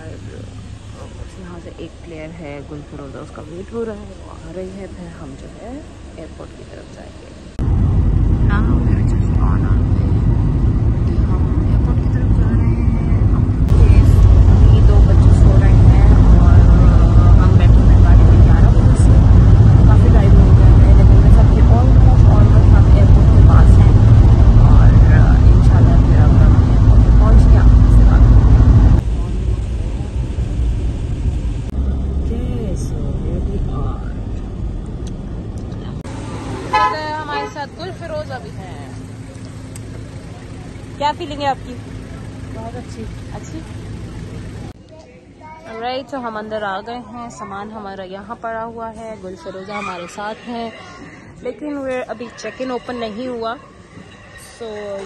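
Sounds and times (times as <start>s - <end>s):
woman talking: 0.0s - 7.5s, 8.4s - 29.0s, 32.2s - 34.2s, 36.7s - 39.0s, 41.0s - 41.9s, 42.5s - 43.7s, 45.7s - 53.7s, 54.4s - 55.0s
vehicle rumble inside cabin: 0.0s - 44.8s.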